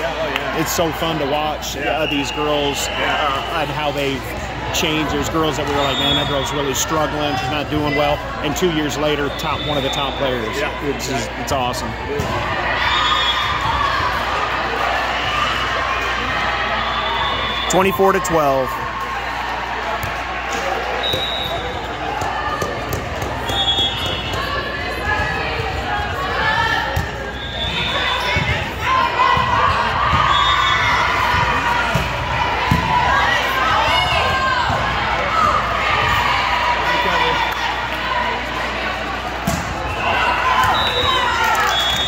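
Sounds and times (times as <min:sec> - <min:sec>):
players calling out: 0:00.0 - 0:42.0
spectators talking and shouting: 0:00.0 - 0:42.0.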